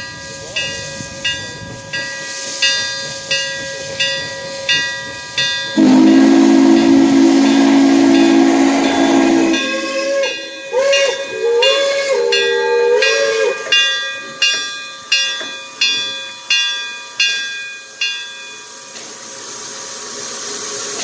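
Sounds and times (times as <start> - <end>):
locomotive bell ringing: 0.0 - 19.6
hissing steam: 5.8 - 13.7, 18.9 - 21.0
long chime whistle blast: 5.8 - 14.0.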